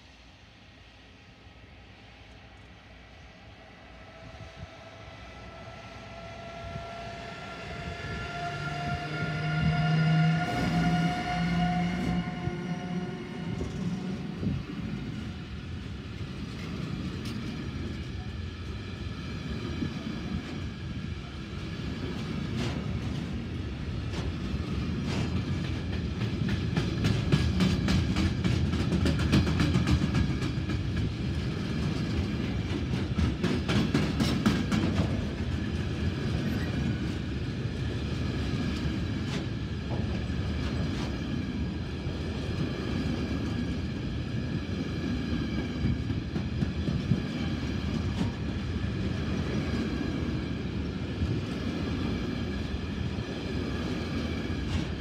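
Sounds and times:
electric locomotives passing: 0.0s - 55.0s
freight train rumbling: 0.0s - 55.0s.

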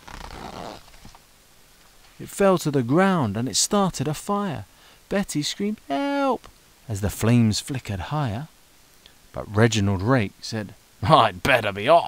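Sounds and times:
book page rustling: 0.0s - 1.2s.

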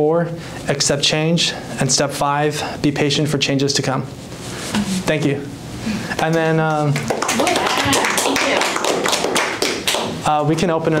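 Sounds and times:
small group applauding: 6.2s - 10.4s.

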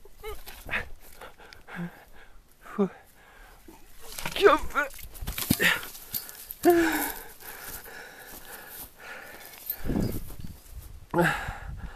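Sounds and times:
man grunting with effort: 6.6s - 7.2s.

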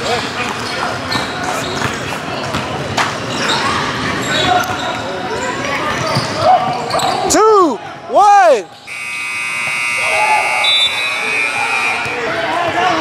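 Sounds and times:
people talking in echoing hall: 0.0s - 13.0s.

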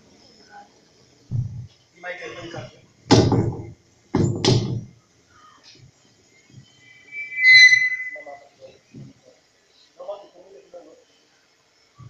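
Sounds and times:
microphone feedback squeal: 6.4s - 8.8s.

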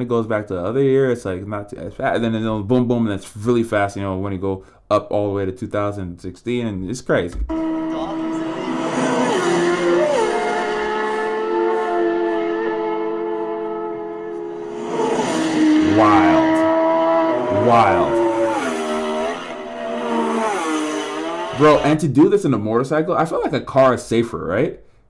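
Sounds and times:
racing motorcycle engine at high revs: 7.6s - 21.9s.

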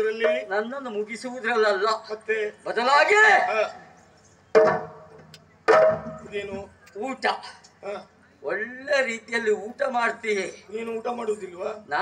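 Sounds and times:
barrel drum strokes: 4.6s - 6.7s.

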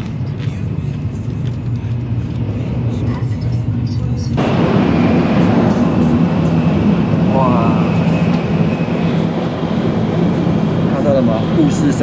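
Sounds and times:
train interior rumble: 0.0s - 12.0s
faint high whine: 4.4s - 12.0s.

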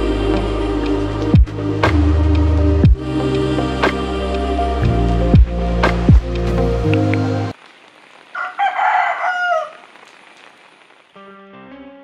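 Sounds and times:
rooster crowing: 8.3s - 9.9s.

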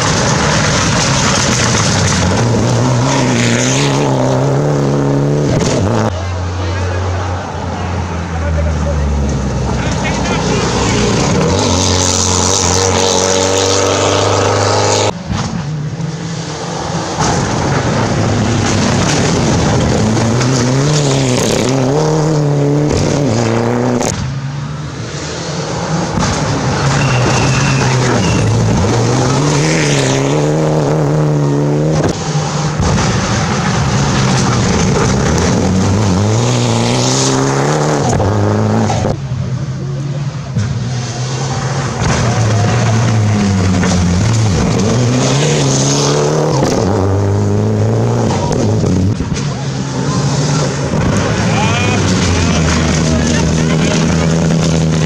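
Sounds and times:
rally car engines revving: 0.0s - 55.0s.

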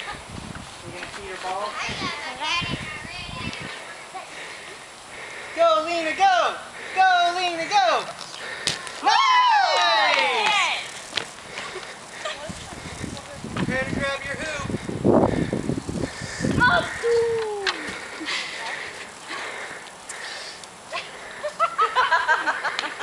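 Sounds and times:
people squealing and calling out: 9.0s - 10.9s, 16.1s - 18.2s.

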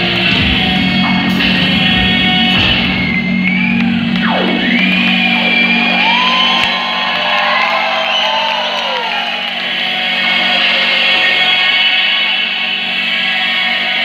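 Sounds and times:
band playing low drone: 0.0s - 14.0s
high gliding wailing lines: 0.0s - 14.0s.

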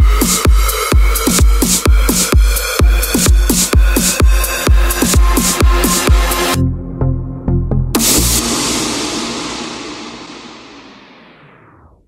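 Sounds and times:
kick drum with crash burst: 0.0s - 6.6s.

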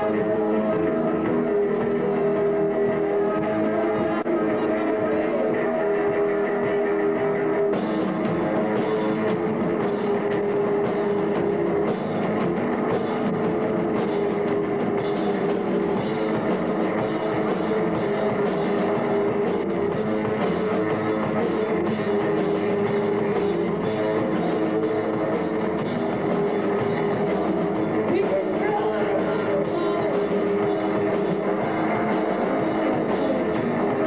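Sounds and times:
bass guitar: 0.0s - 34.0s
electric guitar chords: 0.0s - 34.0s
drum kit with cymbals: 7.6s - 34.0s.

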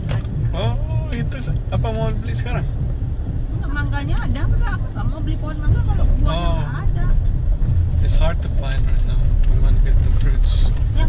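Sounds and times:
car engine and tyres rumble: 0.0s - 11.0s
people talking: 0.6s - 2.7s, 3.6s - 7.2s, 8.0s - 11.0s.

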